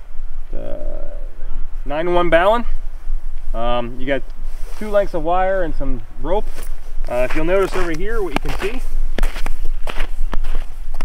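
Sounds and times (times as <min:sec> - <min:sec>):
low microphone rumble: 0:00.0 - 0:11.0
footsteps outdoors: 0:01.6 - 0:11.0.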